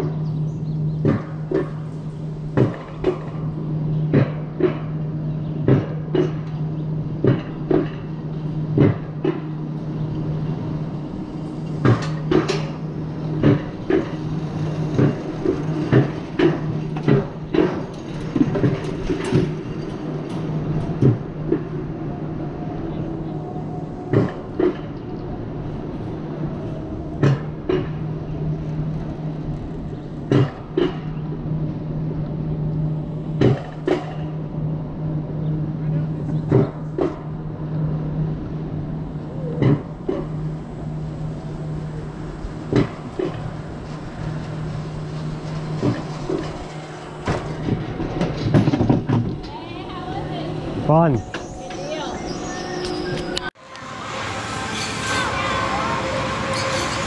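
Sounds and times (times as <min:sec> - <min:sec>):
sled clicks and knocks on rails: 0:00.9 - 0:01.9, 0:02.5 - 0:10.7, 0:11.6 - 0:21.8, 0:24.1 - 0:25.1, 0:27.2 - 0:31.4, 0:33.4 - 0:34.4, 0:36.0 - 0:37.4, 0:39.5 - 0:40.5, 0:42.4 - 0:50.4.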